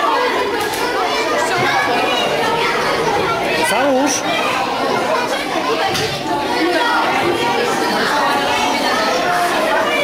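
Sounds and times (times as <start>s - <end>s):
children talking over one another: 0.0s - 10.0s.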